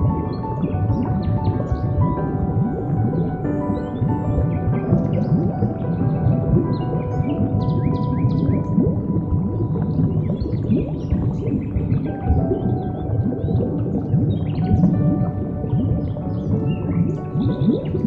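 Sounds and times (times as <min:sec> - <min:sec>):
ambient music with held notes: 0:00.0 - 0:18.0.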